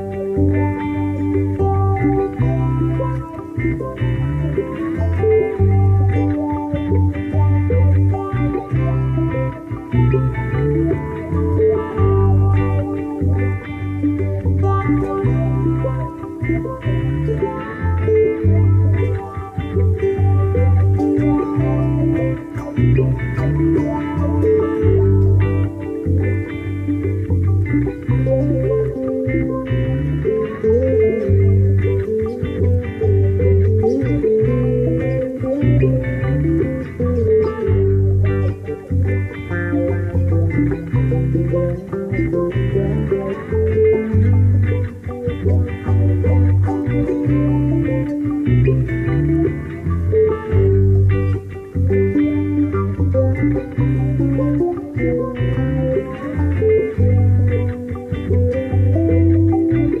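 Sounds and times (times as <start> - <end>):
guitar picked notes: 0.0 - 60.0.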